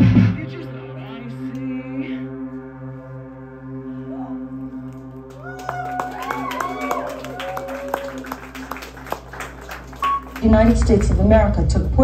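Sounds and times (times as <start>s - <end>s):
hand claps from audience: 5.3s - 11.2s
low amplifier hum: 8.0s - 12.0s.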